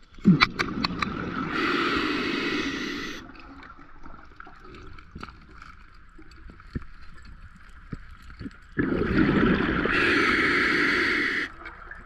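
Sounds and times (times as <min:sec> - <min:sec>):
underwater bubbles rushing: 0:00.3 - 0:07.0, 0:08.6 - 0:12.0.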